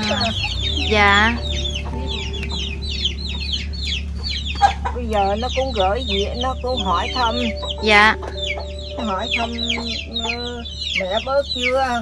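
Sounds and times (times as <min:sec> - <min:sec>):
chicks cheeping: 0:00.0 - 0:12.0.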